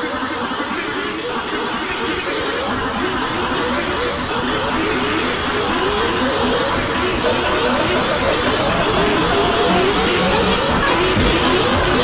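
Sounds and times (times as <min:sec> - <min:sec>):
engine-like noise: 0:00.0 - 0:12.0
voices sliding in pitch: 0:00.0 - 0:12.0.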